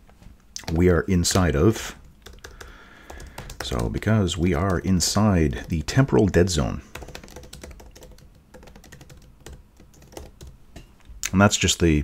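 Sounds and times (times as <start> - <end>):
typing on a keyboard: 0.6 - 10.6.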